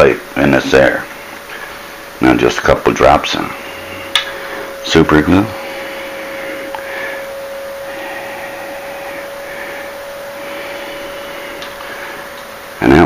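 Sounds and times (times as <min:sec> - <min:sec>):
constant mid-pitched tone: 0:00.0 - 0:13.0
steady mechanical hum: 0:00.0 - 0:13.0.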